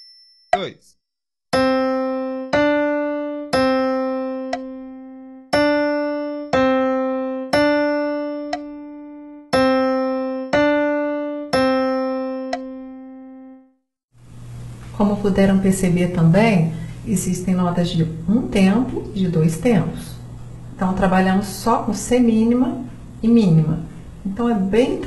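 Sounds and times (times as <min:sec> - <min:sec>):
slow piano melody: 0:01.6 - 0:13.8.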